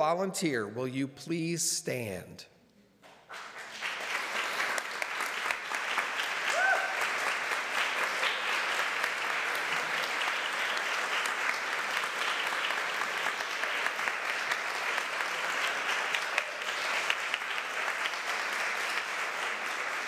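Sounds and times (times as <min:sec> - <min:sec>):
crowd applauding: 0:03.1 - 0:20.0.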